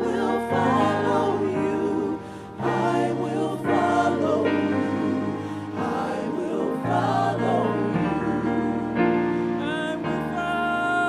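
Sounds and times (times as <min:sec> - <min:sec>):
gospel group singing in harmony: 0:00.0 - 0:11.0.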